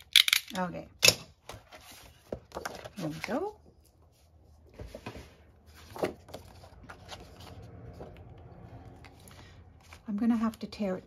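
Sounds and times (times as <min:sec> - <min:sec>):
paper rustling: 0:01.5 - 0:08.0.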